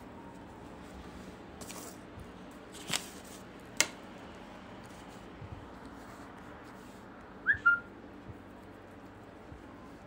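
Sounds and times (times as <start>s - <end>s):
high whistled chirp: 7.4s - 7.9s.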